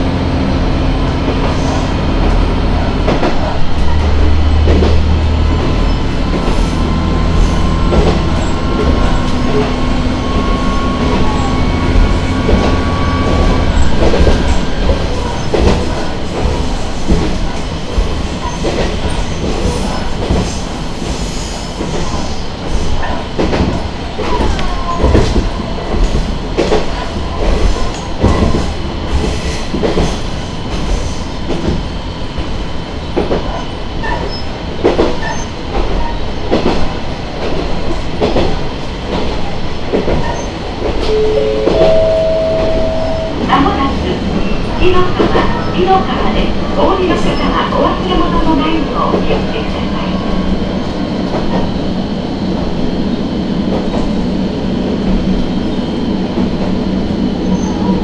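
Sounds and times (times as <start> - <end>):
rising three-note chime: 41.1 - 43.5
announcement voice: 41.1 - 50.2.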